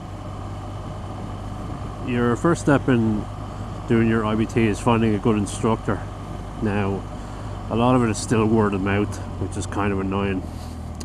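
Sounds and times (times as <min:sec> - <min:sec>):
motorcycle engine running: 0:00.0 - 0:11.0
road noise: 0:00.0 - 0:11.0
wind noise: 0:01.2 - 0:02.2.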